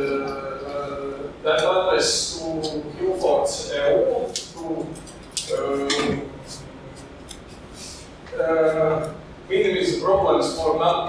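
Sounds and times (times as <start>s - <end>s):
man talking through microphone: 0.0s - 6.5s, 8.3s - 11.0s
faint hissing breaths: 5.6s - 9.1s.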